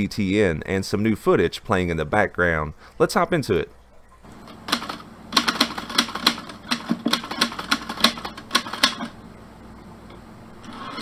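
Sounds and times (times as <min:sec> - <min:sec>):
typewriter keys clicking: 0:04.7 - 0:09.1.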